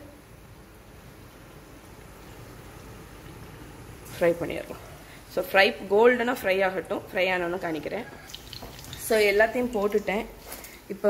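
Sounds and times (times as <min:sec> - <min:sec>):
banana slices sizzling in oil: 0:06.3 - 0:11.0
person speaking: 0:09.0 - 0:11.0.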